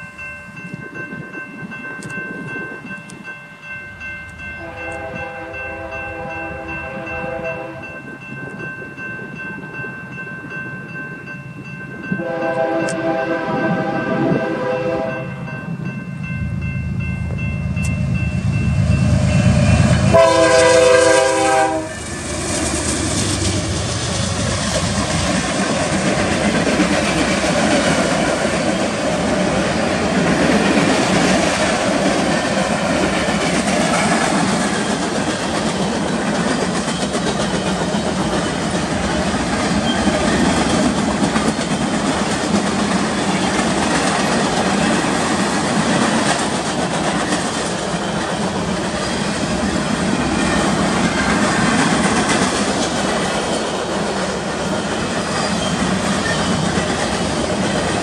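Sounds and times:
train air horn: 0:04.6 - 0:07.8, 0:12.2 - 0:15.4, 0:19.1 - 0:22.4.

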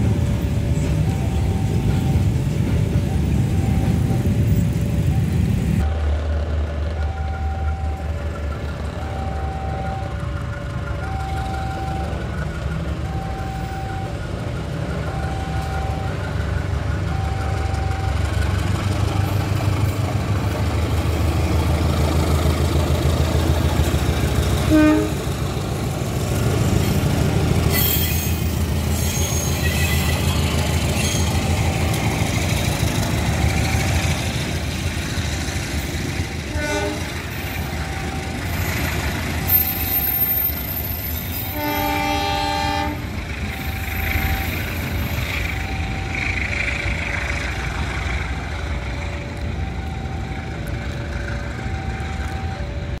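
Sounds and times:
train rumbling past: 0:00.0 - 0:53.0
train horn blast: 0:24.6 - 0:25.3, 0:36.5 - 0:37.4, 0:41.4 - 0:43.2.

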